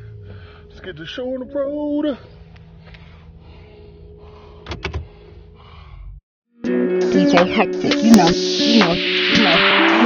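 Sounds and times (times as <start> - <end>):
car engine idling: 0.0 - 5.8
clicks and knocks of controls: 4.6 - 5.0.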